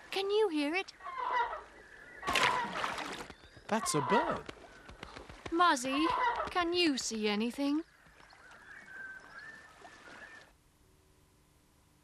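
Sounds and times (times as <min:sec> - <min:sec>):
faint wavering whistle-like bird call: 0:08.6 - 0:10.6.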